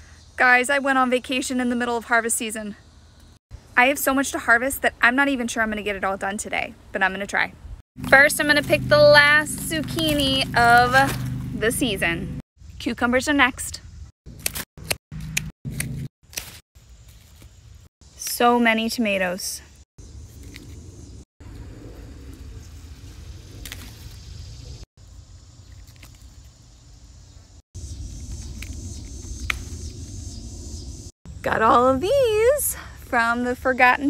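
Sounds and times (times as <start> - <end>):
faint high insect hum: 0.0 - 3.8, 20.0 - 31.5
pruning snips cutting stems: 8.0 - 11.6, 14.3 - 17.6, 23.6 - 24.0
tomato snapping off vine: 14.3 - 16.6, 23.6 - 24.1.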